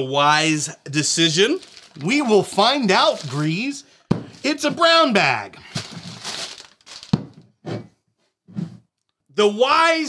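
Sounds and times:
paper bag crinkling: 0:01.4 - 0:04.6, 0:05.6 - 0:07.4.

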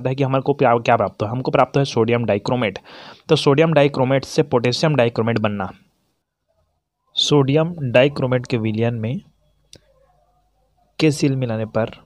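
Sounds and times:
person speaking: 0:00.0 - 0:05.9, 0:06.7 - 0:12.0.

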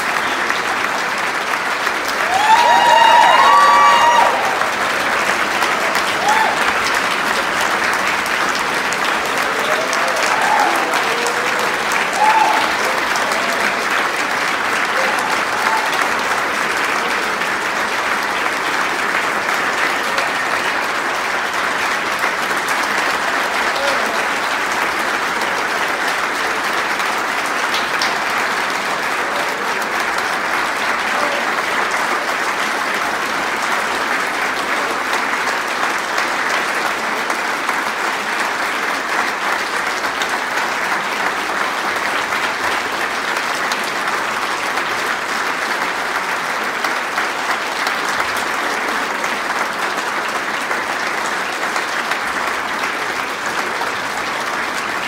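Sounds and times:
audience applauding: 0:00.0 - 0:55.0.

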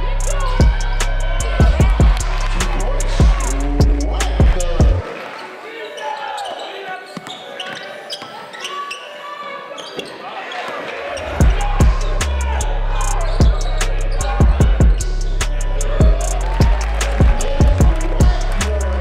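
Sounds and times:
music with heavy drum beat: 0:00.0 - 0:05.0, 0:11.4 - 0:19.0
crowd and player voices: 0:00.0 - 0:19.0.

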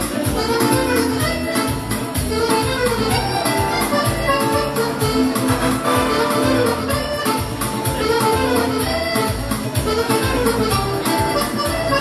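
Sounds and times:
accordion playing samba melody: 0:00.0 - 0:12.0
drum and bass backing beat: 0:00.0 - 0:12.0.

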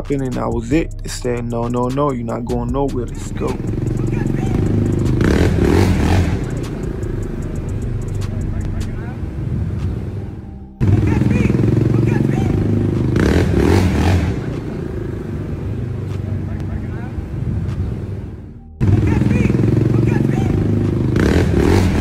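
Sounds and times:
street noise drone: 0:00.0 - 0:22.0.

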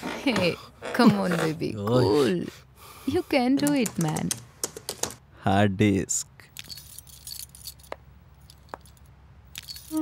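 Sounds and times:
hard disk clicking and rattling: 0:03.6 - 0:05.2.

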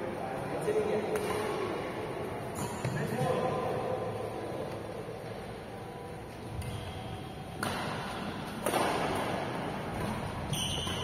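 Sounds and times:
badminton racket hitting shuttlecock: 0:07.5 - 0:11.0.

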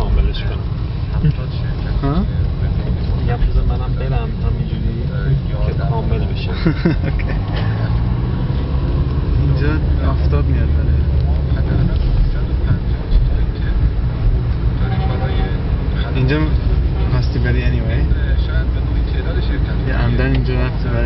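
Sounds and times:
car engine and tyres rumbling: 0:00.0 - 0:21.0.

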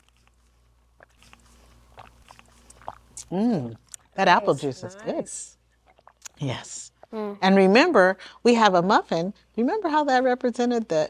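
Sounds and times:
people sipping juice: 0:01.0 - 0:07.5.

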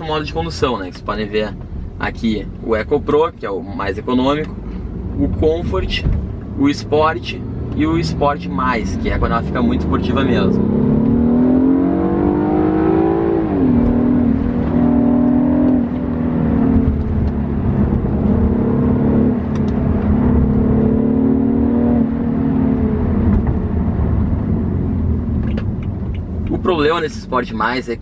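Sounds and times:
car engine accelerating: 0:04.0 - 0:27.4.

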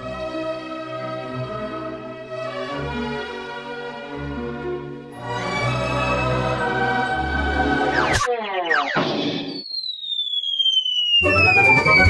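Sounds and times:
orchestral music: 0:00.0 - 0:08.1, 0:11.2 - 0:12.0
cartoon falling whistle: 0:07.9 - 0:12.0.

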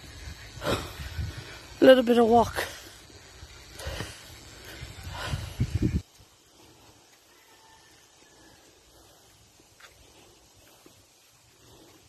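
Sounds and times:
person breathing hard: 0:00.2 - 0:01.8, 0:02.6 - 0:07.4, 0:08.1 - 0:12.0.

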